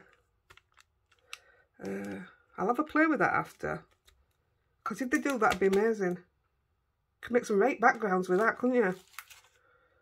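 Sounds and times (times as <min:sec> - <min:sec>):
stiff plastic clicks and taps: 0:00.0 - 0:02.2
person speaking: 0:01.8 - 0:06.4, 0:07.2 - 0:09.2.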